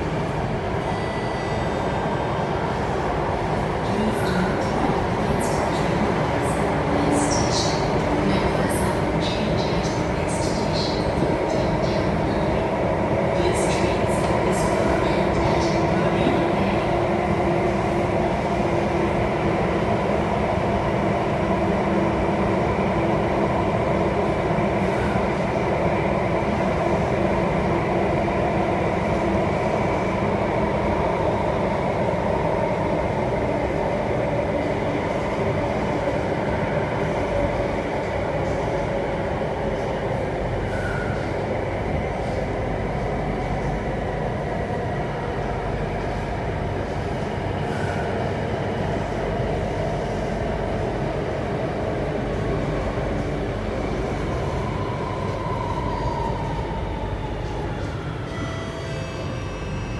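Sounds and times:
metro train rumbling in tunnel: 0.0 - 59.9.

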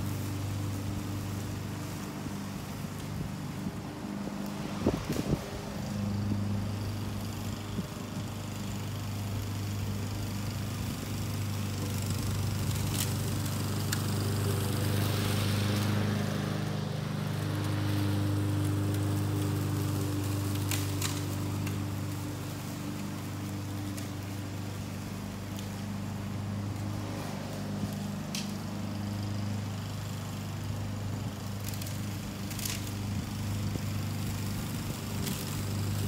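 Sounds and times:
lawn mower engine running: 0.0 - 36.0.

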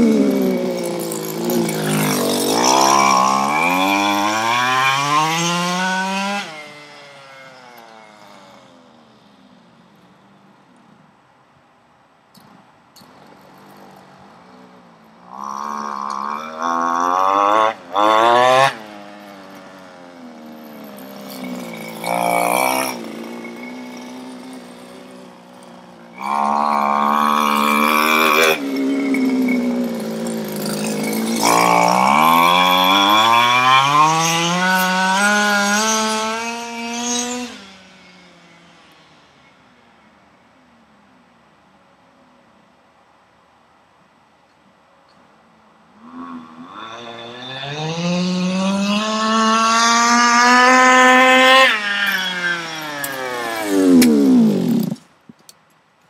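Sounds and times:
small two-stroke engine revving: 0.0 - 10.5, 13.0 - 39.6, 46.0 - 55.1.

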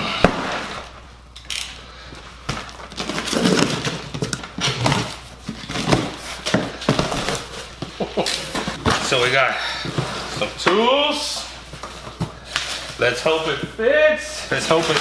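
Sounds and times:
cardboard and tape scraping and rustling: 2.6 - 10.7, 14.4 - 15.0.

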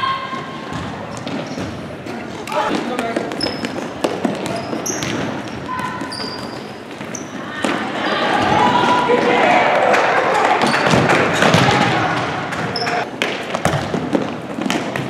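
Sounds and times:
people shouting in a gym: 0.0 - 1.1, 4.5 - 13.1
sneaker squeaks: 0.0 - 8.6, 12.6 - 13.9
ball kicks and bounces: 10.6 - 15.0.

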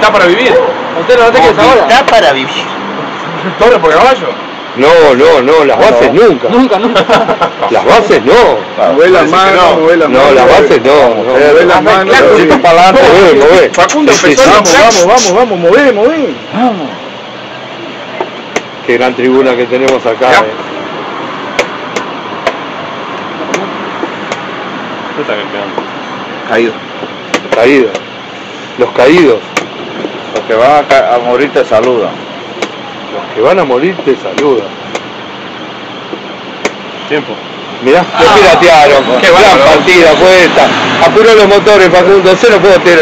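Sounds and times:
background noise: 0.0 - 43.0.

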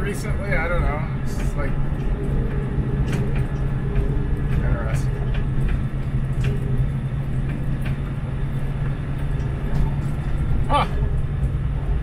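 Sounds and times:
diesel truck engine drone: 0.0 - 12.0
tyre and road noise: 0.0 - 12.0.

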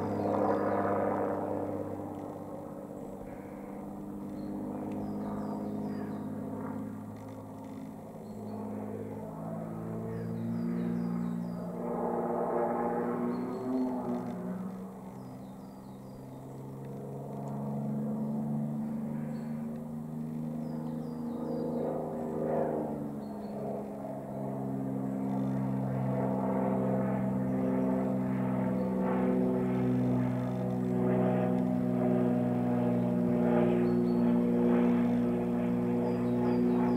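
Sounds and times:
propeller plane engine droning: 0.0 - 36.9.

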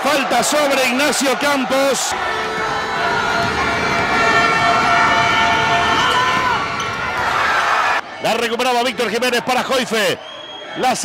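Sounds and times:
sports crowd noise: 0.0 - 11.0.

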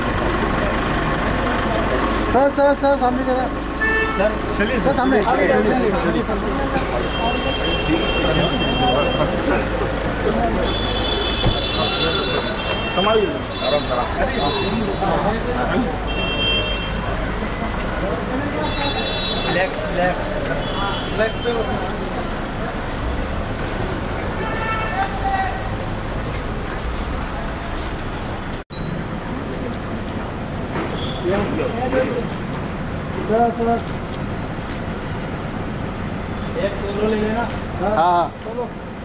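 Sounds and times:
murmur of voices: 0.0 - 35.0
traffic rumble: 0.0 - 39.0.

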